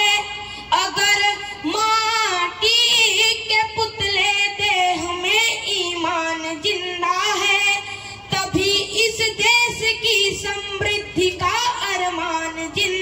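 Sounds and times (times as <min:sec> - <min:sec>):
high voice singing unaccompanied: 0:00.0 - 0:13.0.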